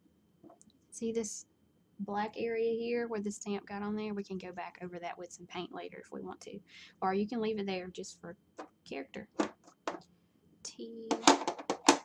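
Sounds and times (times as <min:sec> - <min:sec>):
wooden stamps clattering on table: 0:11.1 - 0:12.0.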